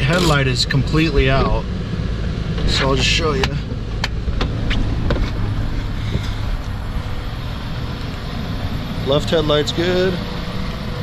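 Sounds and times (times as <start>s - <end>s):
car engine idling: 0.0s - 11.0s
sharp clicks and knocks: 3.4s - 5.4s.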